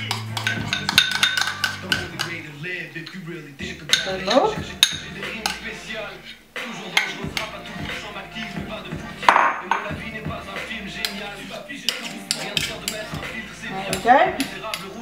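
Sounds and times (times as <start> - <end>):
spoon scraping ceramic bowl: 0.0 - 2.4, 6.9 - 8.6, 10.9 - 14.9.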